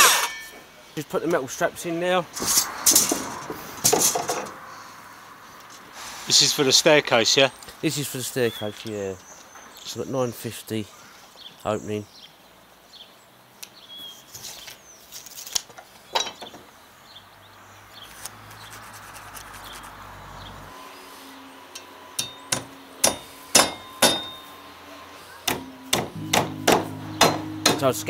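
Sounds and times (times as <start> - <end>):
hammer driving nails through metal: 22.2 - 24.4, 25.4 - 27.8.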